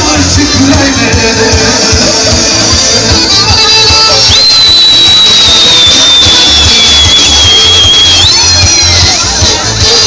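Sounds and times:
high held tone: 0:03.4 - 0:09.3.

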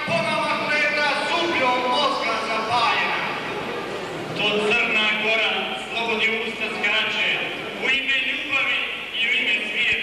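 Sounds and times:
man reading aloud: 0:00.0 - 0:03.4, 0:04.4 - 0:10.0.

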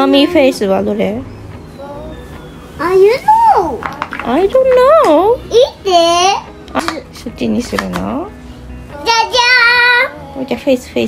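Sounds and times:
young child singing: 0:01.8 - 0:02.3, 0:08.9 - 0:10.4.

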